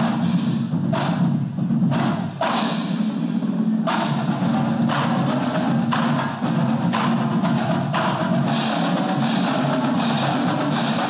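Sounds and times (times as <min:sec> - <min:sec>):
drumline playing drum cadence: 0:00.0 - 0:11.0.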